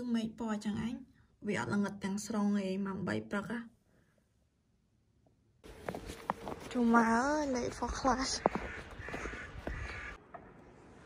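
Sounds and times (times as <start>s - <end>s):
footsteps crunching on snow: 5.6s - 10.2s
crow cawing: 7.9s - 10.2s.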